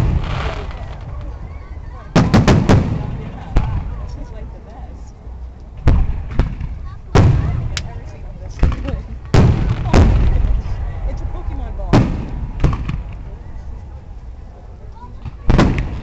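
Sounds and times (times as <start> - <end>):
fireworks booming: 0.0 - 1.4, 2.0 - 4.2, 5.8 - 13.4, 15.2 - 16.0
rolling echo: 5.7 - 16.0.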